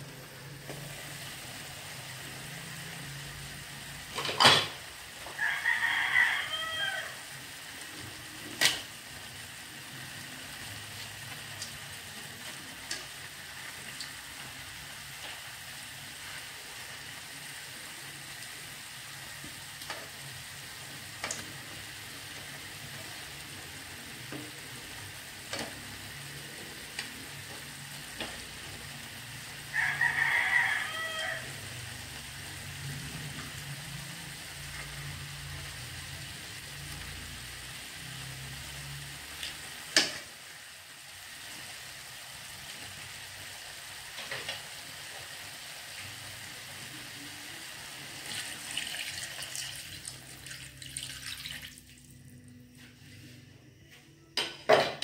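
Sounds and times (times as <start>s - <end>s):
meat sizzling in a wok: 0.0s - 53.1s
rooster crowing: 5.2s - 7.3s, 29.6s - 31.8s.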